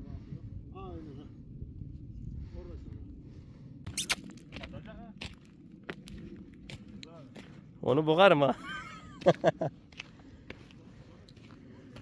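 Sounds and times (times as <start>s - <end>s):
low steady rumble: 0.0s - 12.0s
footsteps on gravel: 4.0s - 7.8s, 9.2s - 12.0s.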